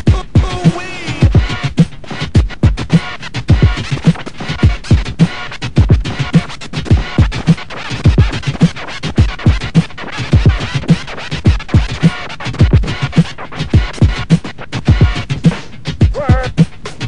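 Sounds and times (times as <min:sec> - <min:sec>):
turntable scratching: 0:00.0 - 0:17.0.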